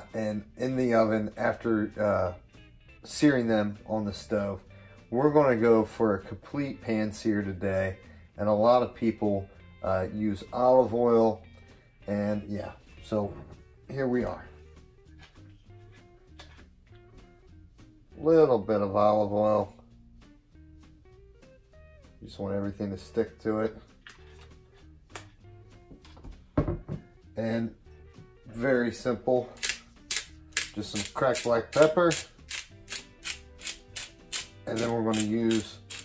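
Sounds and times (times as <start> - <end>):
pepper grinder cracking peppercorns: 29.6 - 36.0.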